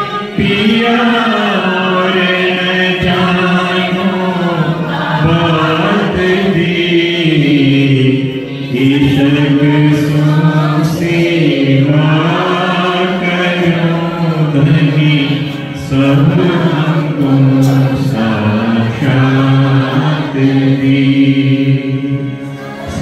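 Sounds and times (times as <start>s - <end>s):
devotional chanting: 0.0s - 23.0s.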